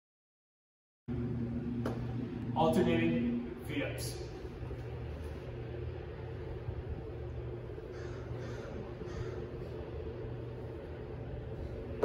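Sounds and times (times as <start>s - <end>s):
low rumble and hum: 1.1s - 12.0s.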